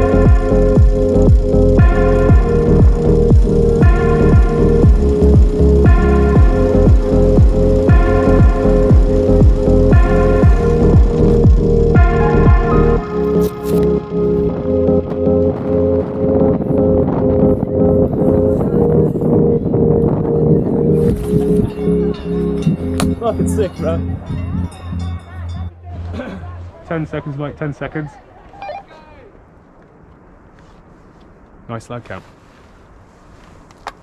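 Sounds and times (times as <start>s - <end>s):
electronic background music: 0.0s - 27.6s.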